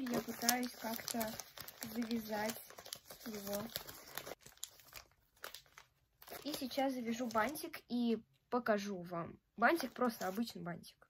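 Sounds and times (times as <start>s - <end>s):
wrapping paper crinkling: 0.0s - 7.8s, 9.7s - 10.6s.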